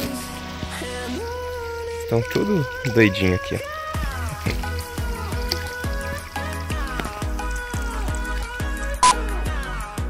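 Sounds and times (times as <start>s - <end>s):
music with sustained notes: 0.0s - 10.0s.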